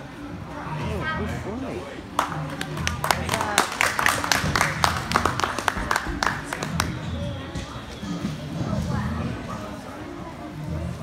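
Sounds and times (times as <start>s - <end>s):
small group clapping: 2.1s - 7.0s.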